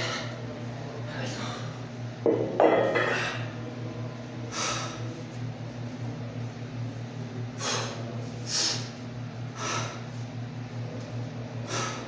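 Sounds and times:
steady low hum: 0:00.0 - 0:12.0
man breathing hard: 0:04.5 - 0:05.2, 0:07.5 - 0:10.2, 0:11.6 - 0:12.0.

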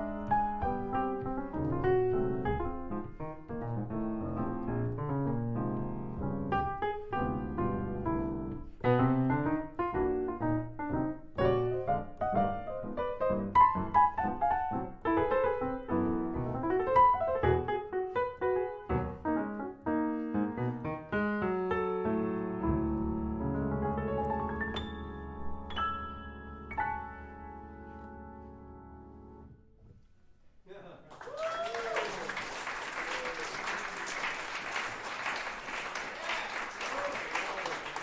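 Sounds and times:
solo jazz piano: 0:00.0 - 0:30.0.

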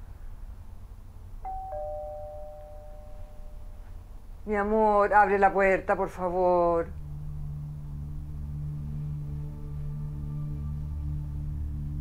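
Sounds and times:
two-tone doorbell chime: 0:01.5 - 0:03.8.

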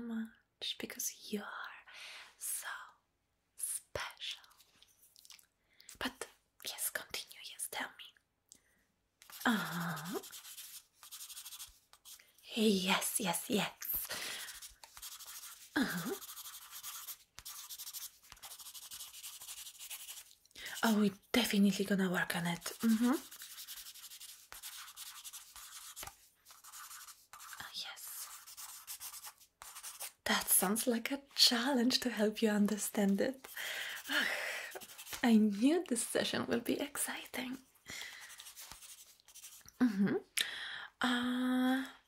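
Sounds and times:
woman whispering: 0:00.0 - 0:03.0, 0:03.6 - 0:04.7, 0:06.0 - 0:08.2, 0:09.3 - 0:10.4, 0:12.4 - 0:14.1, 0:20.6 - 0:23.3, 0:27.4 - 0:28.4, 0:30.2 - 0:33.4, 0:35.2 - 0:37.7
pen scratching on paper: 0:09.2 - 0:12.2, 0:13.8 - 0:21.2, 0:22.6 - 0:30.2, 0:34.0 - 0:35.2, 0:38.2 - 0:39.6.

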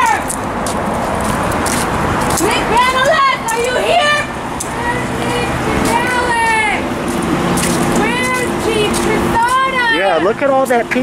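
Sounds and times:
people talking indistinctly: 0:01.6 - 0:11.0.

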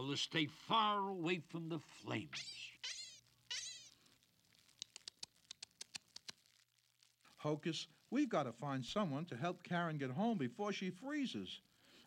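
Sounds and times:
cartoon rabbit squeaky chatter: 0:02.3 - 0:04.0
light ticks: 0:04.6 - 0:06.6.

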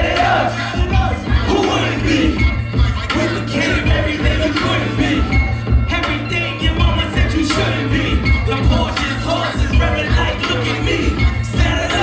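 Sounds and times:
crowd shouting along: 0:00.0 - 0:02.4
loud hip-hop beat: 0:00.0 - 0:12.0.

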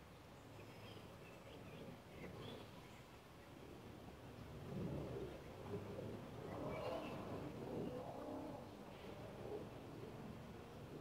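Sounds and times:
bird chirp: 0:00.3 - 0:03.2.

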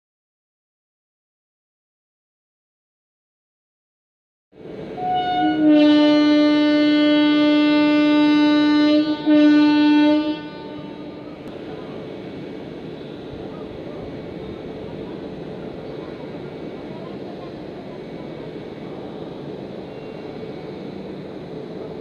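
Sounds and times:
train coaches rolling past: 0:04.6 - 0:22.0
locomotive horn blasts: 0:05.0 - 0:11.4.

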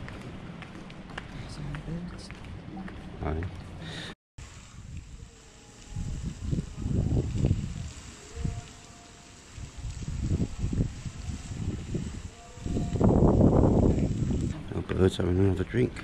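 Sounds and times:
wind buffeting microphone: 0:04.6 - 0:08.7, 0:09.5 - 0:15.2.

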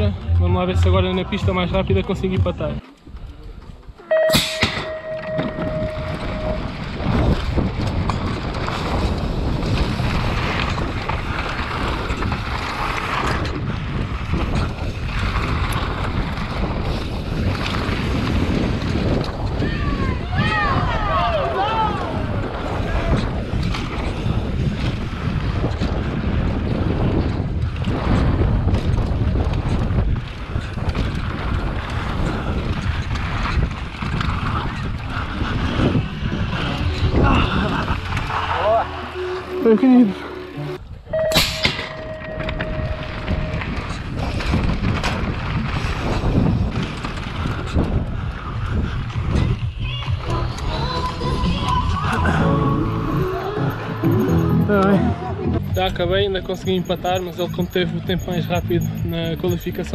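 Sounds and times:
bike tyres on dirt track: 0:00.0 - 0:52.7
wind rushing over microphone: 0:00.0 - 0:54.3
steady tone: 0:04.0 - 0:07.0, 0:36.1 - 0:43.9, 0:52.4 - 0:59.9
short loud burst: 0:04.1 - 0:06.6
spectators shouting: 0:19.6 - 0:23.1, 0:36.6 - 0:39.6.

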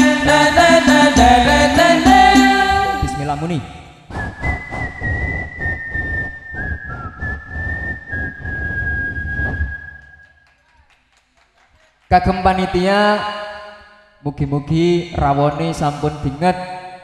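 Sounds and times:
person singing: 0:00.0 - 0:03.6
high feedback whistling tone: 0:02.8 - 0:10.4.

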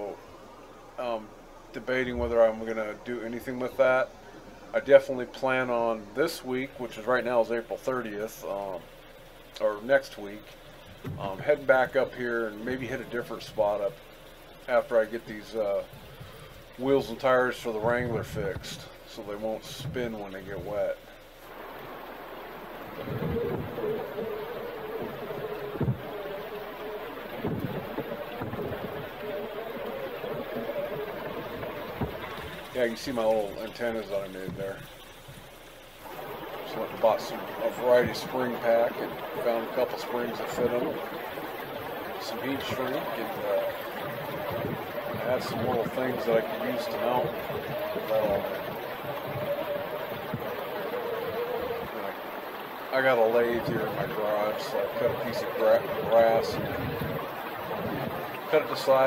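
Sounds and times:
water washing around tires: 0:00.0 - 0:59.0
tires knocking on rocks: 0:22.8 - 0:33.1.

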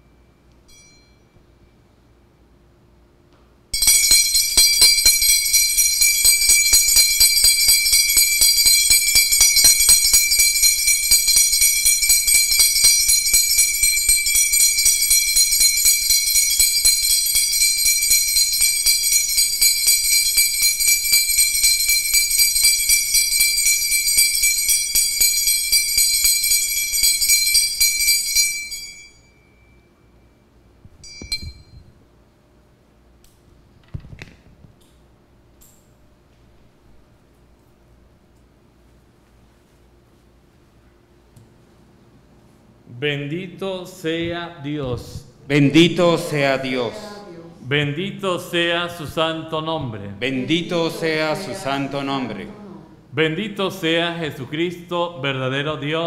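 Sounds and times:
faint clinks: 0:00.4 - 0:01.8, 0:03.8 - 0:32.0
altar bells jingling: 0:03.8 - 0:29.8, 0:50.2 - 0:52.4.

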